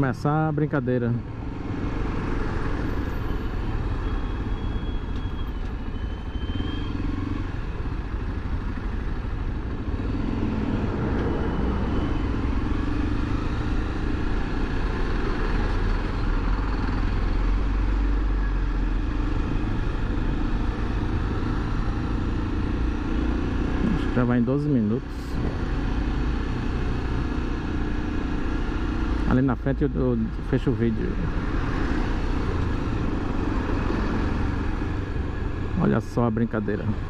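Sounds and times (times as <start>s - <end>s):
truck and car traffic: 0.0s - 37.0s.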